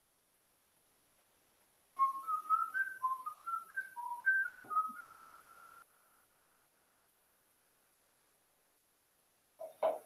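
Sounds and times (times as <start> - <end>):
person whistling a tune: 2.0 - 5.8.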